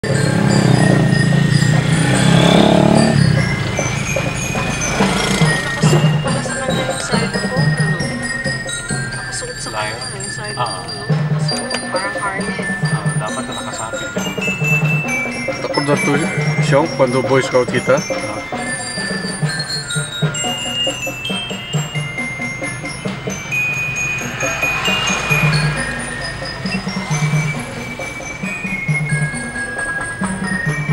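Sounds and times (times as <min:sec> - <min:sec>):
glockenspiel notes: 0:00.0 - 0:30.9
vehicle engine running: 0:00.0 - 0:30.9.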